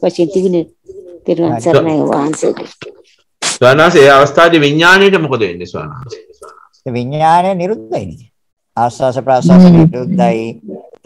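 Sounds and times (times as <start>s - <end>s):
man speaking slowly: 9.3s - 11.0s.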